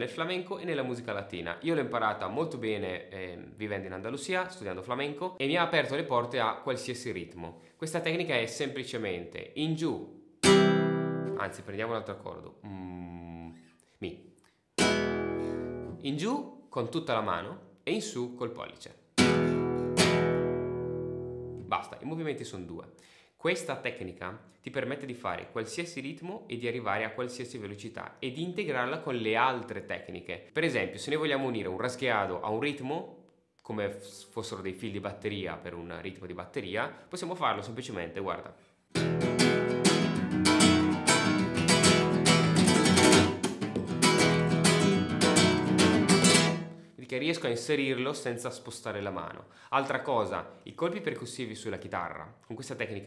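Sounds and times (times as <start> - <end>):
classical guitar chord strummed: 10.4 - 11.4, 19.2 - 21.6, 39.0 - 46.8.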